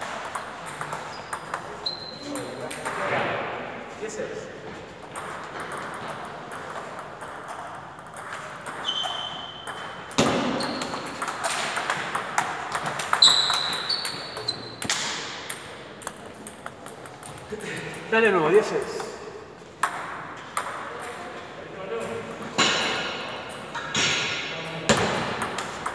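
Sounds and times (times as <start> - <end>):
shoes squeaking on floor: 0.8 - 2.5, 8.7 - 11.2, 12.9 - 14.8
table tennis ball clicking: 9.6 - 17.6.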